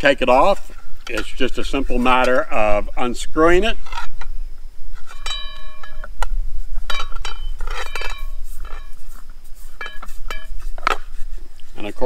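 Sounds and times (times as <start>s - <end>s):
metal pan clinking and ringing: 5.1s - 6.1s.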